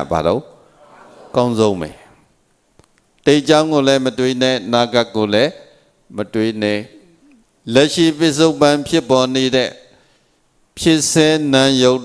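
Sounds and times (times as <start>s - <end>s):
man speaking into a microphone: 1.3s - 2.2s, 3.2s - 9.9s, 10.8s - 12.0s.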